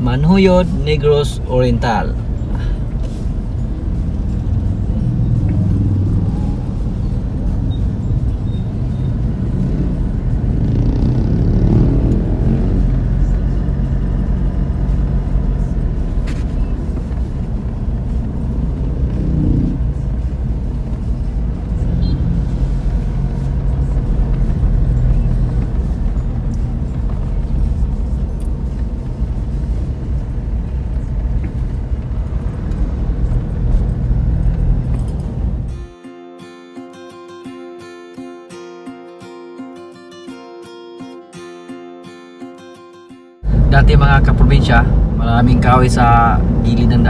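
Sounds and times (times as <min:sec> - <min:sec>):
car engine and tyre rumble: 0:00.0 - 0:36.0, 0:43.4 - 0:47.0.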